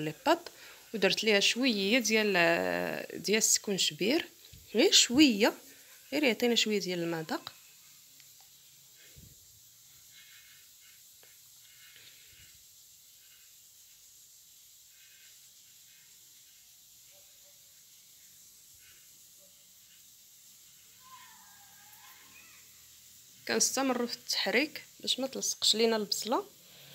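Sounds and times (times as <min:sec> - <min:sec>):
faint steady hiss: 0:00.0 - 0:26.9.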